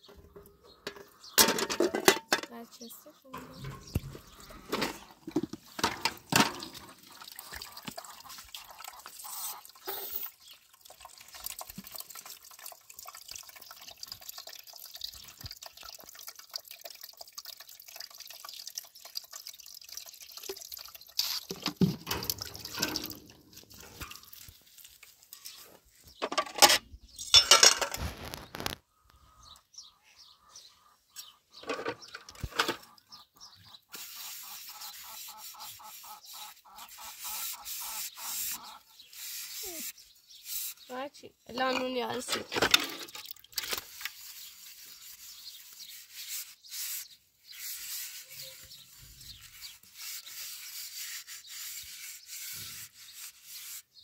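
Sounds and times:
water splashing and dripping: 3.3s - 25.6s, 41.6s - 46.4s
plates sloshing in water: 3.4s - 10.5s, 21.4s - 25.6s.

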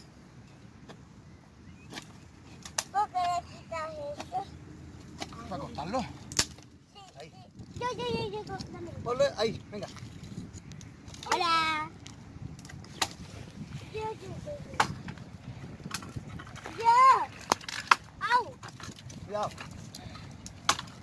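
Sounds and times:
dry branches snapping: 6.2s - 6.7s, 9.9s - 13.6s, 17.4s - 21.0s.

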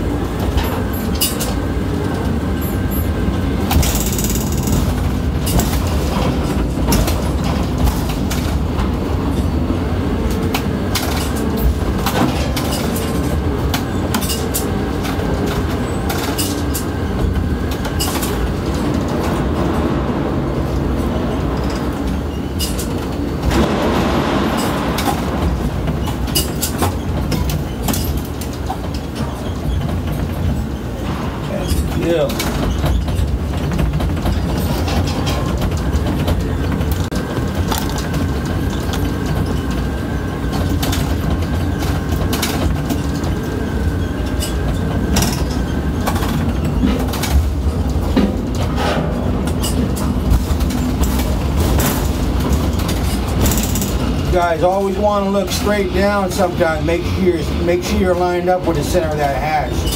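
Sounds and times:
crane low rumble: 0.0s - 31.4s
rattling clicks: 3.7s - 8.6s.

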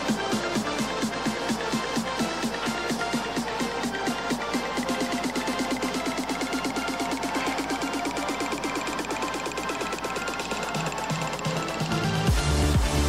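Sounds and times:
electronic dance music: 0.0s - 13.0s.

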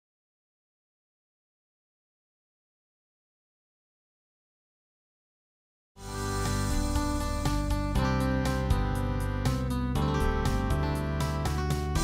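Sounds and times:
music: 6.0s - 12.0s.

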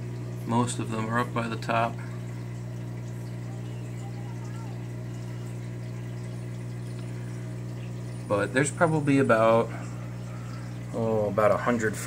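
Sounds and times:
aquarium pumps humming: 0.0s - 12.0s
faint water trickle: 0.0s - 12.0s.

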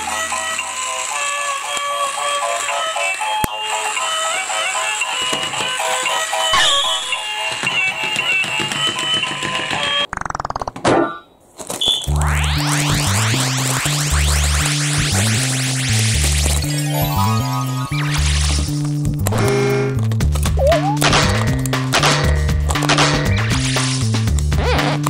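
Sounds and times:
toy electronic tune: 0.1s - 8.2s, 12.0s - 18.8s.

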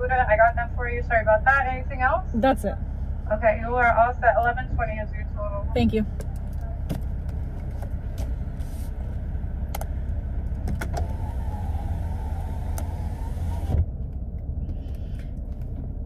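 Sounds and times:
low rumble of car: 0.0s - 16.0s
electric window motor running: 10.6s - 13.8s.

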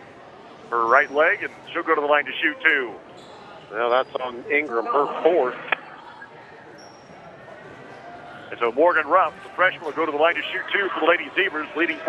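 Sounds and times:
low murmur of crowd: 0.0s - 12.0s.

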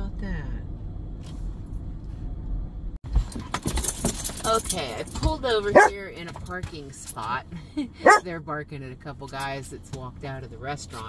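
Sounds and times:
minivan rumbling: 0.0s - 11.0s
metallic jangling and rattling: 3.2s - 6.6s.

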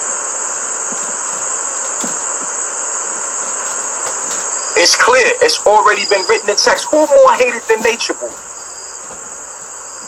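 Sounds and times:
night insects chorus: 0.0s - 10.0s.

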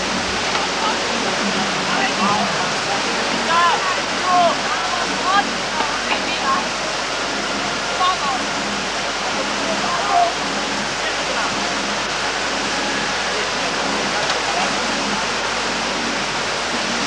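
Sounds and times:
distant voices calling: 0.0s - 17.0s
rushing whitewater roar: 0.0s - 17.0s.

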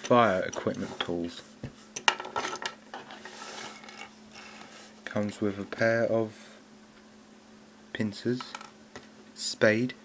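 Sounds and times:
plastic toys rustling on wooden floor: 2.3s - 4.9s.

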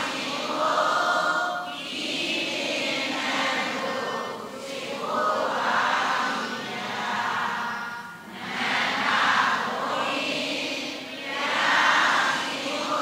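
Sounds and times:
congregation chanting in unison: 0.0s - 13.0s.

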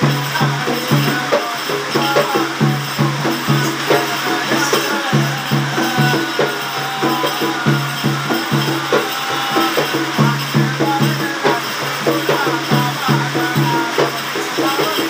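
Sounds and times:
hand drum beating rhythm: 0.0s - 15.0s
man chanting: 0.0s - 15.0s
metal hand rattle jingling: 0.0s - 15.0s.

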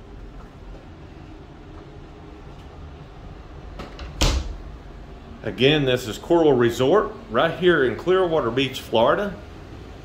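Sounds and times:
closet door thumping shut: 3.8s - 4.6s.

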